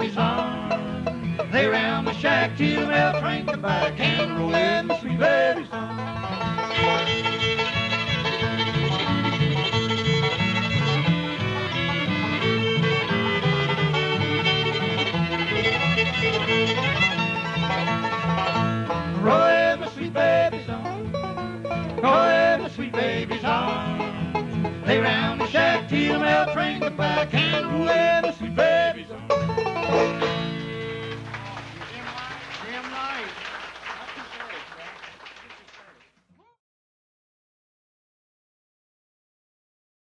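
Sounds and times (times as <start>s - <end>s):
banjo: 0.0s - 31.7s
fiddle: 0.0s - 33.3s
acoustic guitar rhythm: 0.0s - 35.9s.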